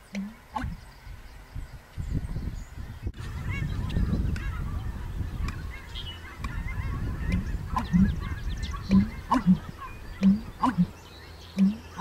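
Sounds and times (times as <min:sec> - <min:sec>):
bittern booming call: 0:00.0 - 0:00.8, 0:03.2 - 0:12.0
small birds chirping: 0:00.0 - 0:12.0.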